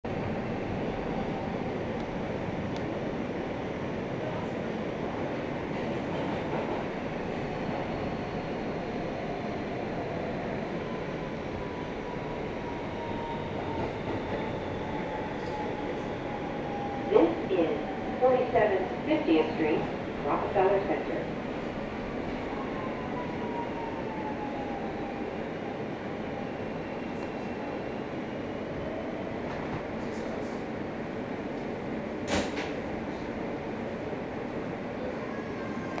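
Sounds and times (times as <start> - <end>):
subway train wheels and motors rumbling: 0.0 - 36.0.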